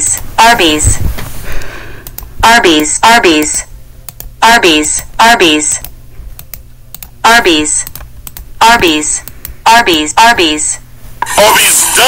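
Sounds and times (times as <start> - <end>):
computer voice speaking: 0.0 - 1.0, 2.4 - 3.7, 4.4 - 5.8, 8.6 - 12.0
sharp clicks: 7.8 - 8.5.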